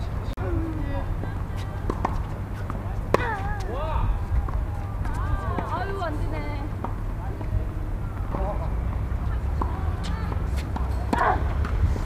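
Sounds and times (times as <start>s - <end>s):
tennis balls struck and bouncing: 1.5s - 3.8s, 8.3s - 11.8s.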